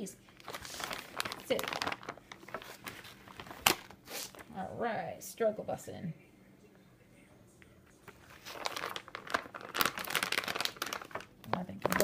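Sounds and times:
plastic bags crinkling: 0.3s - 4.5s, 8.1s - 12.0s.

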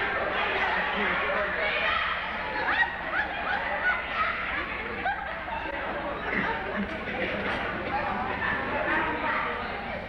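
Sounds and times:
audience laughter: 2.4s - 8.7s.

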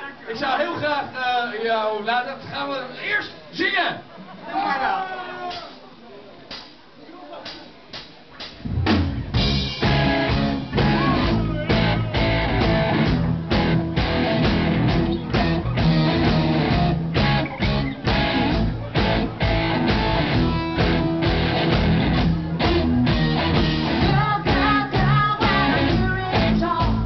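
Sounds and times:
live rock band playing: 8.4s - 27.0s.

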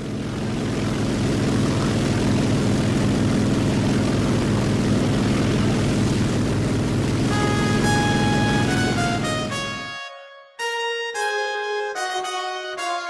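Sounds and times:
propeller plane engine drone: 0.0s - 10.0s.

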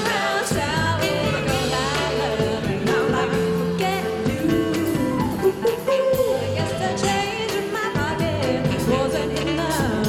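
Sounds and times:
drums: 0.0s - 10.0s
pop band music: 0.0s - 10.0s
woman singing: 0.0s - 10.0s.

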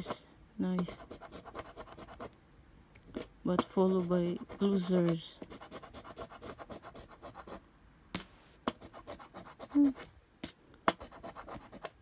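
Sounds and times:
coin scraping scratch card: 0.8s - 2.3s, 3.2s - 7.6s, 11.0s - 12.0s.

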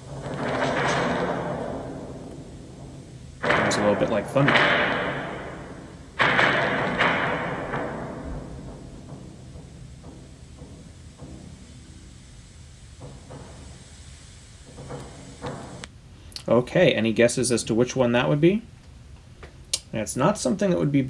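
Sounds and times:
bass drum booming strokes: 0.0s - 16.2s.

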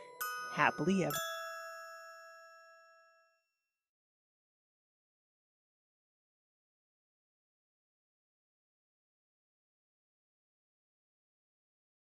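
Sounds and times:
bell-like chime ringing: 0.0s - 3.4s.

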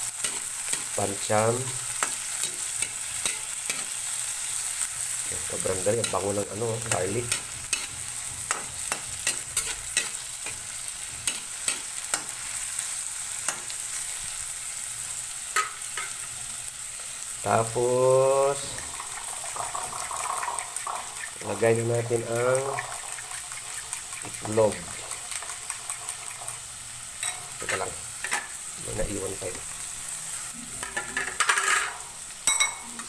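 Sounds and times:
vegetables sizzling in oil: 0.0s - 33.0s
spatula scraping metal pan: 5.9s - 12.3s, 18.8s - 26.6s.

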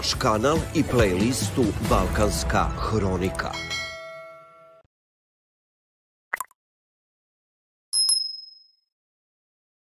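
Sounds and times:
high bright bell ding: 8.0s - 8.8s.

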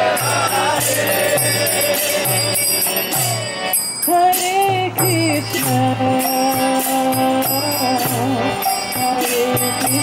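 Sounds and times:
hand cymbals: 0.0s - 10.0s
harmonium chords: 0.0s - 10.0s.

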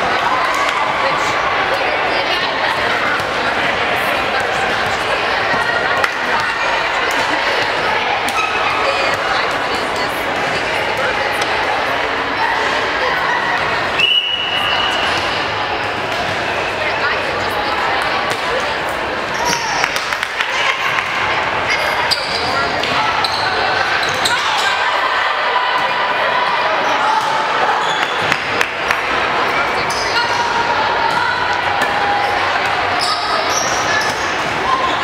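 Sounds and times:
players and spectators calling out: 0.0s - 35.0s
referee's whistle: 14.0s - 15.2s.

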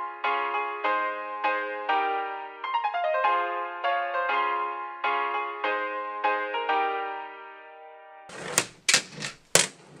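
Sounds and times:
board clacking on plastic table: 8.3s - 10.0s.

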